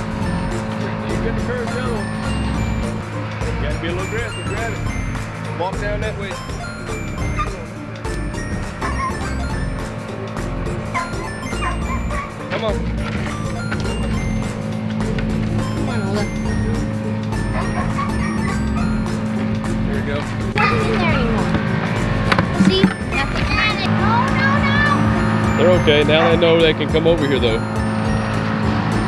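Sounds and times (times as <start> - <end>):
machinery engine drone: 0.0 - 29.0.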